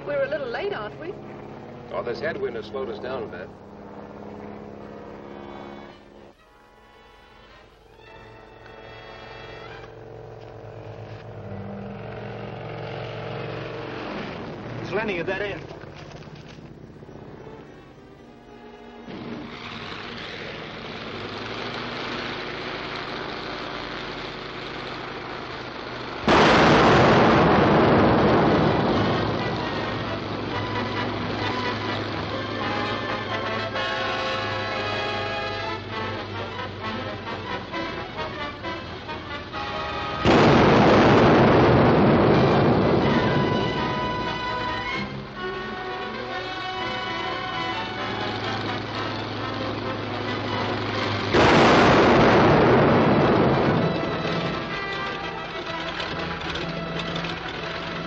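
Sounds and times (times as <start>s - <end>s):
loud explosions: 26.2s - 31.9s, 40.1s - 45.2s, 50.9s - 55.6s
background music: 27.5s - 40.3s, 42.9s - 58.0s.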